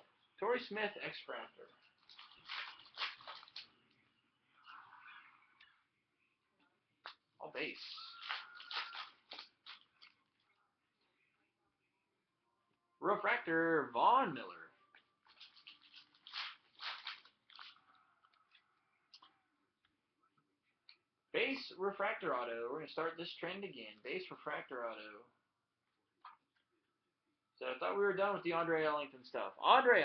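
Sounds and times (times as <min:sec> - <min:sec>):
trading cards sliding and rustling: 0:08.0 - 0:09.9.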